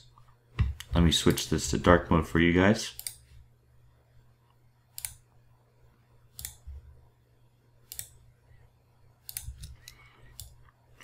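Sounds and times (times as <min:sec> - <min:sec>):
low steady hum: 0:00.0 - 0:11.0
computer mouse clicks: 0:03.0 - 0:03.2, 0:04.9 - 0:05.2, 0:06.3 - 0:06.6, 0:07.8 - 0:08.2, 0:09.2 - 0:10.8.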